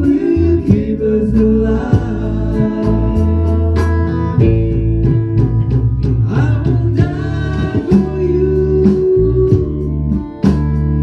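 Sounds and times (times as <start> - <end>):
person singing: 0.0 - 4.5, 6.2 - 10.6
band playing live: 0.0 - 11.0.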